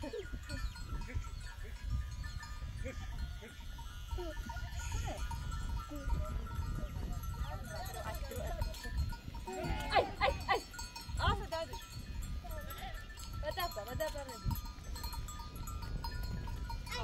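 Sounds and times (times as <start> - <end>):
goats bleating: 9.4 - 10.8.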